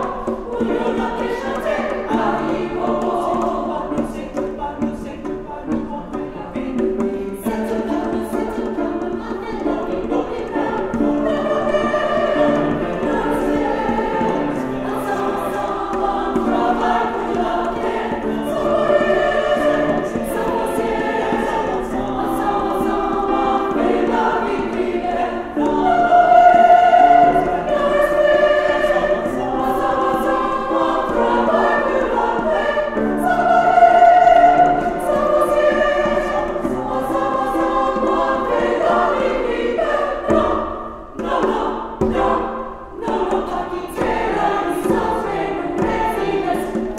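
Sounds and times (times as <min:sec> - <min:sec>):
women's choir singing: 0:00.0 - 0:46.9.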